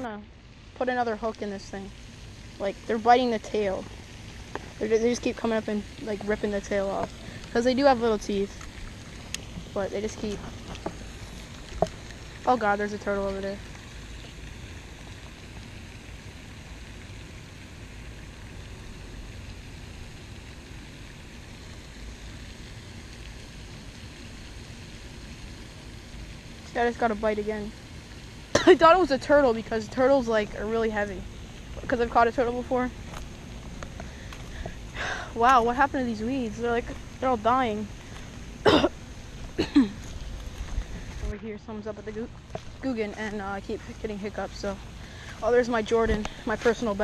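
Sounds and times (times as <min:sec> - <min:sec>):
even hiss: 0:00.0 - 0:47.0
man coughing: 0:38.7 - 0:38.9, 0:39.6 - 0:40.0.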